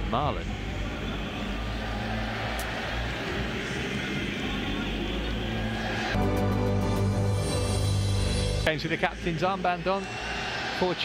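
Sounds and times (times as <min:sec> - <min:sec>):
stadium crowd murmur: 0:00.2 - 0:06.2.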